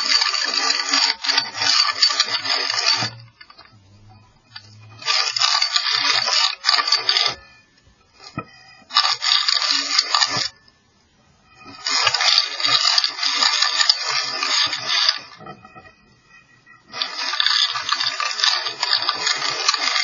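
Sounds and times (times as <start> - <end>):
scraping inside chimney flue: 0.0 - 20.0.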